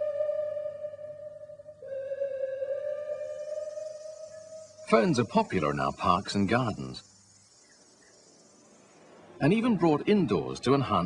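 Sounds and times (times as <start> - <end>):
held electronic note: 0.0 - 7.8.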